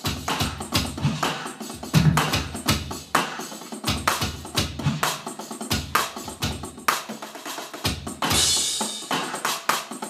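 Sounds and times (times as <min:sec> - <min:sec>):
electronic drum kit beat: 0:00.0 - 0:10.0.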